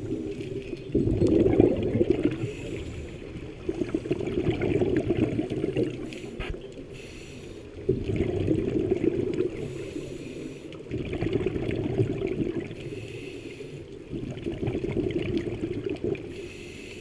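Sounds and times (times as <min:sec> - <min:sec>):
exhaled bubbles rushing: 0:00.0 - 0:06.2, 0:07.8 - 0:09.8, 0:10.8 - 0:12.8, 0:14.0 - 0:16.4
regulator inhale hiss: 0:02.4 - 0:03.4, 0:06.0 - 0:07.8, 0:09.6 - 0:10.8, 0:12.8 - 0:14.0, 0:16.3 - 0:17.0.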